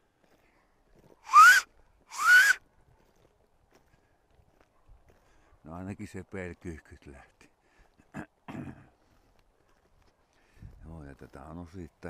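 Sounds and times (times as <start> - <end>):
breathy whistles rising in pitch: 1.2 - 2.6.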